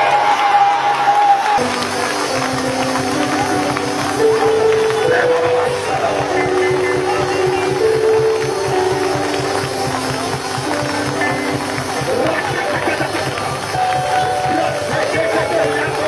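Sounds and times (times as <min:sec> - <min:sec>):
church band music: 0:01.6 - 0:16.0.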